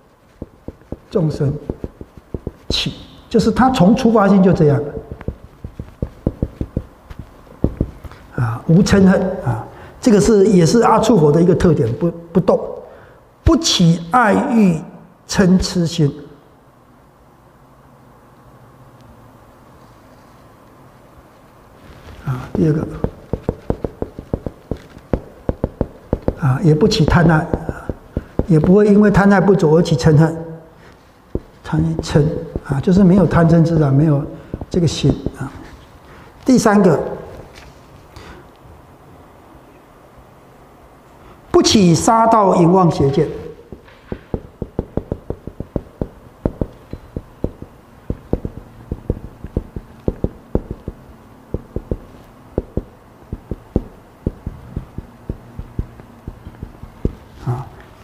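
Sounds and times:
marker tapping on whiteboard: 0.3 - 2.9, 5.1 - 8.1, 22.5 - 29.0, 31.3 - 35.5, 43.7 - 57.3.

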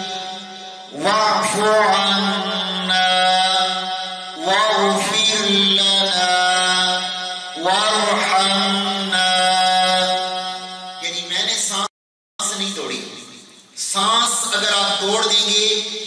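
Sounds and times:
man chanting melodically: 0.0 - 16.0.

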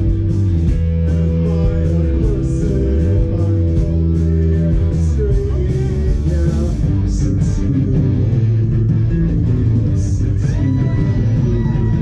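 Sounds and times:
bass guitar: 0.0 - 12.0
electric guitar: 0.0 - 12.0
rock band playing: 0.0 - 12.0.

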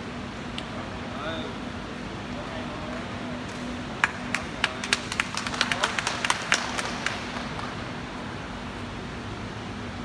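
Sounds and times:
scattered applause: 4.0 - 8.0.

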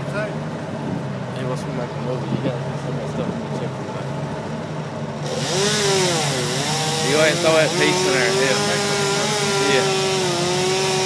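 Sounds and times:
low engine hum: 0.0 - 11.0
chainsaw running: 5.2 - 11.0.

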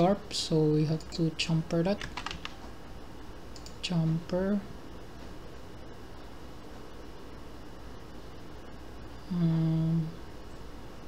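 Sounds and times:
man humming hmm: 9.2 - 10.2.

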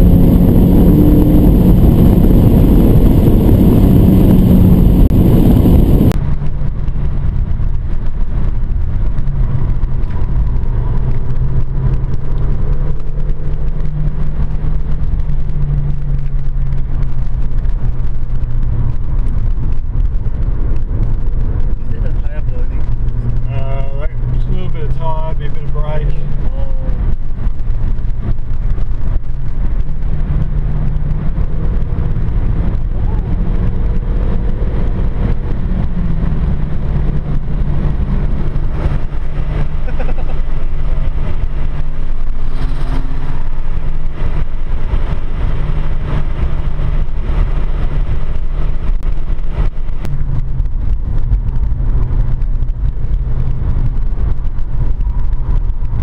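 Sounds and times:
car engine running: 0.0 - 56.0
road noise: 0.0 - 56.0.

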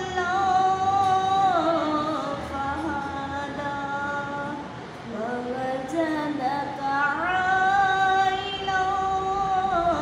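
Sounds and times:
girl reciting melodically: 0.0 - 10.0.

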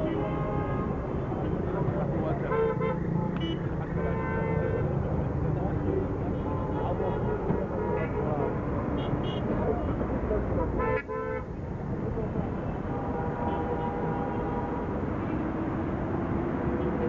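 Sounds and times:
car horns honking: 0.0 - 5.0, 6.3 - 10.0, 10.8 - 11.5, 12.6 - 15.4
rumble of engines: 0.0 - 17.0.

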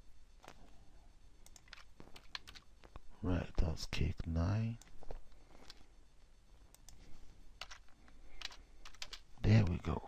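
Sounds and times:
keyboard keystrokes: 1.5 - 2.6, 7.6 - 7.8, 8.4 - 9.2.

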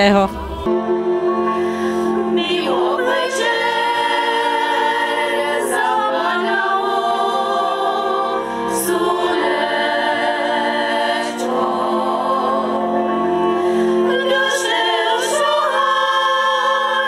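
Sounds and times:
women's choir singing folk song: 2.1 - 17.0.

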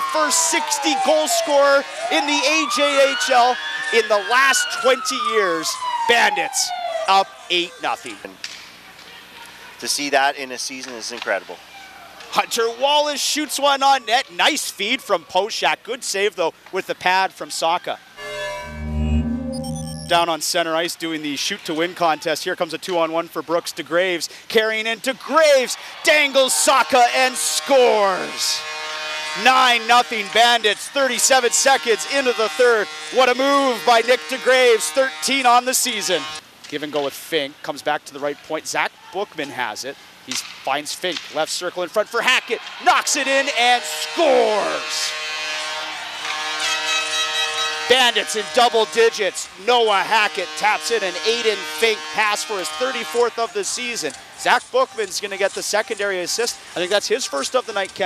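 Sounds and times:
deep bass swell: 18.2 - 20.2
goal horn blast: 18.2 - 20.2, 27.2 - 30.6, 31.2 - 36.4, 42.9 - 53.4
held organ-like synth chord: 18.2 - 20.2
high electronic blips: 18.2 - 20.2.

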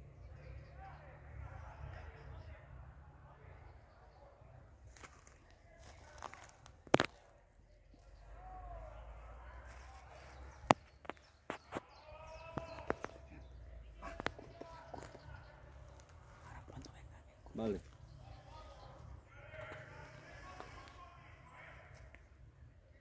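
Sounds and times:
distant voices calling: 0.0 - 22.8.

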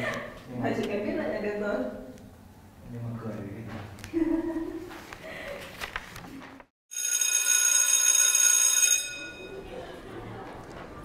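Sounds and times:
electric school bell ringing: 6.9 - 9.7.

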